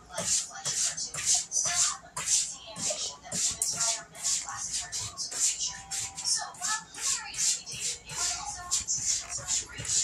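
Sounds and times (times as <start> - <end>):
cat licking fur: 0.2 - 10.0.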